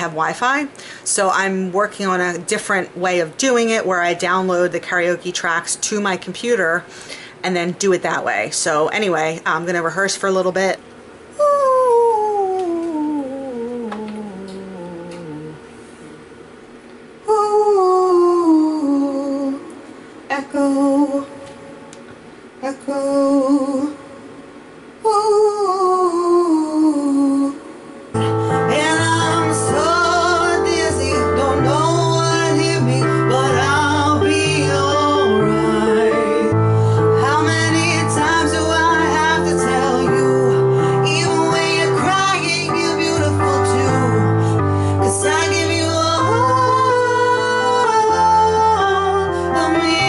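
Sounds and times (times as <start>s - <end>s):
woman singing with echo: 11.4s - 16.3s, 17.2s - 21.9s, 22.6s - 24.4s, 25.0s - 50.0s
karaoke backing track with bass: 27.3s - 50.0s.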